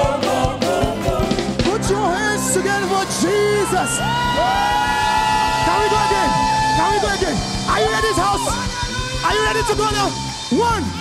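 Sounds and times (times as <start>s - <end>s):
choir and singers with band: 0.0s - 10.5s.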